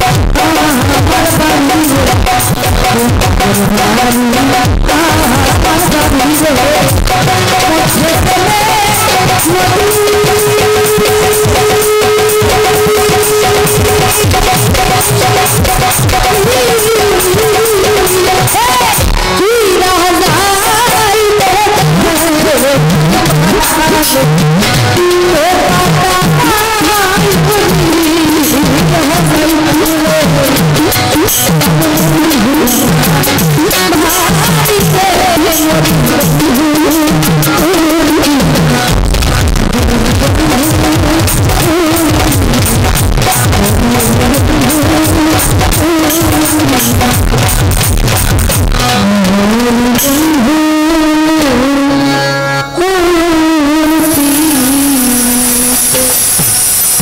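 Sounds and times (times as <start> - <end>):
woman singing into a microphone: 0.0 - 48.3, 48.9 - 57.0
hand drum beat: 0.0 - 50.6
folk ensemble lead melody: 0.0 - 57.0.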